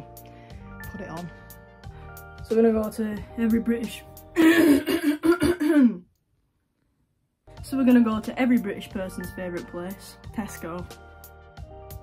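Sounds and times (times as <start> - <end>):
man clearing his throat: 4.4 - 6.0
man coughing: 4.4 - 6.0.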